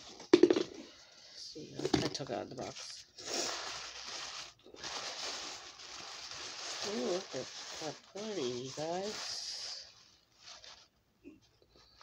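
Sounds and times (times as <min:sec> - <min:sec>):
plastic bag crinkling: 0:01.8 - 0:11.0.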